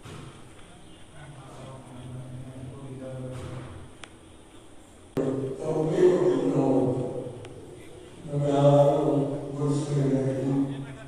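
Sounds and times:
man chanting: 5.2 - 7.4, 8.2 - 11.0.

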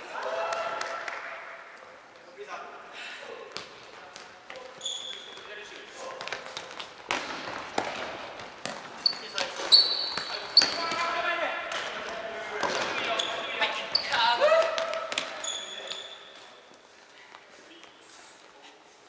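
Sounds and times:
sneakers squeaking: 3.5 - 18.4.

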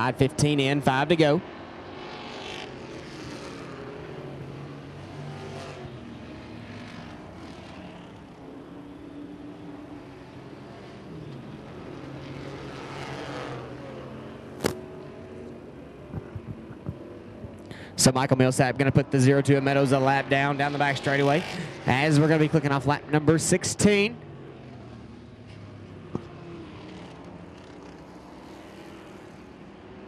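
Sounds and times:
race car engines passing: 0.0 - 30.0.

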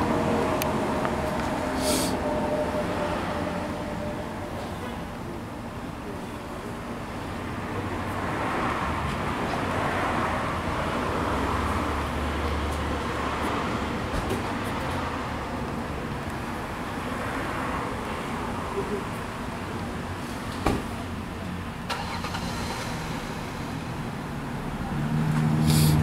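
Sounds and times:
motor vehicle passing: 24.7 - 26.0.

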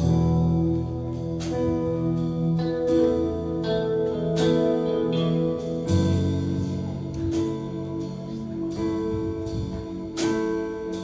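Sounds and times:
held keyboard chords: 0.0 - 11.0
low bass note: 0.0 - 11.0.

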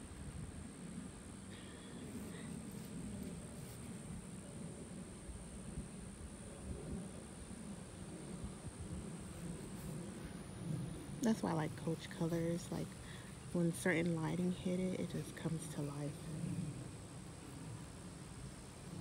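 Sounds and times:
steady low rumble: 0.0 - 19.0.

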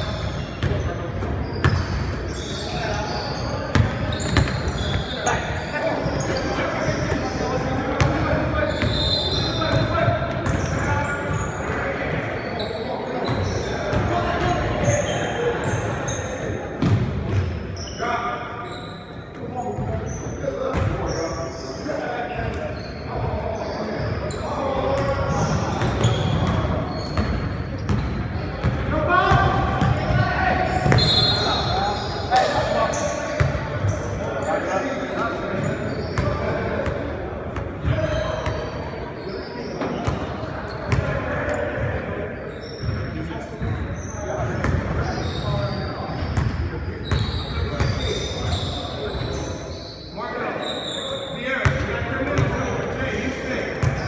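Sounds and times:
sneakers squeaking: 0.0 - 54.0.

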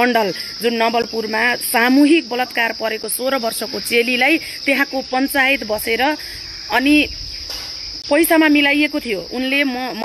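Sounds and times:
woman speaking: 0.0 - 7.2, 8.0 - 10.0
insects droning: 0.0 - 10.0.

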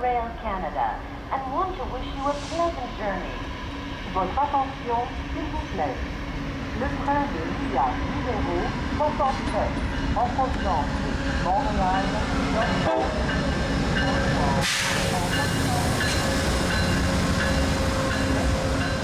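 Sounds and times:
public address announcement: 0.0 - 18.6
diesel locomotive engine rumbling: 0.0 - 19.0
air hiss: 14.6 - 16.7.

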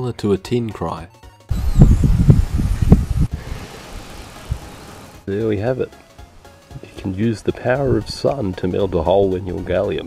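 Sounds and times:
faint hiss: 2.6 - 5.3.

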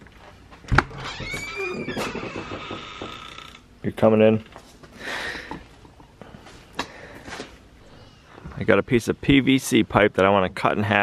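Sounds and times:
door creaking and squeaking: 0.7 - 3.8.

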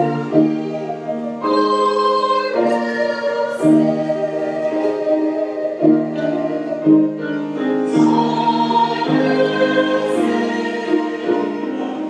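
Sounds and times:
choir singing held chords: 0.0 - 12.0
piano accompaniment: 0.0 - 12.0.

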